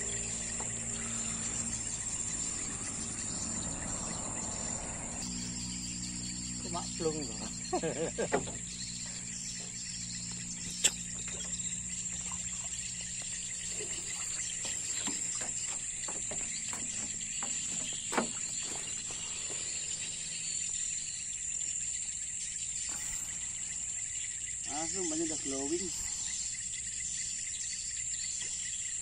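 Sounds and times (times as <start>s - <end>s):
high-pitched insect chorus: 0.0s - 29.0s
sharp knocks: 14.6s - 19.1s.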